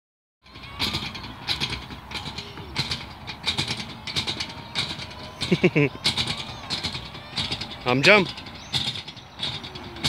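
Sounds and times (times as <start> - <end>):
playground springs creaking: 0.4 - 10.0.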